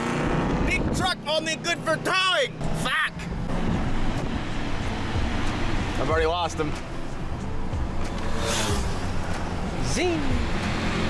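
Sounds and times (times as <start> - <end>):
engine and road noise in cab: 0.0 - 11.0.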